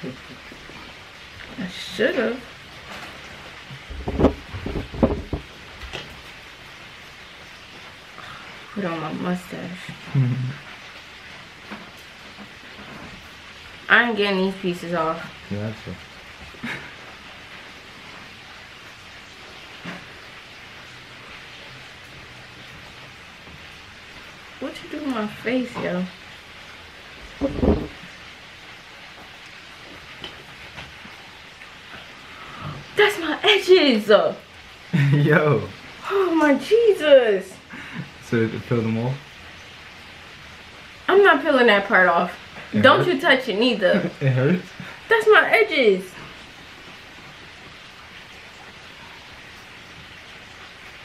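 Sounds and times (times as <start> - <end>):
room noise hiss: 0.0 - 51.0.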